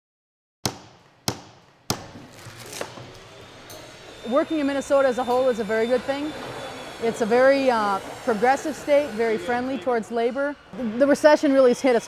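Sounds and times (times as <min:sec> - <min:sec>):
sharp knocks with echo: 0:00.6 - 0:02.2.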